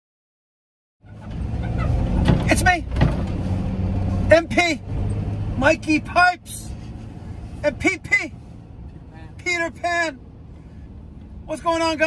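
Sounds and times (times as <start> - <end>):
road noise: 1.0 - 12.0
van engine drone: 1.0 - 12.0.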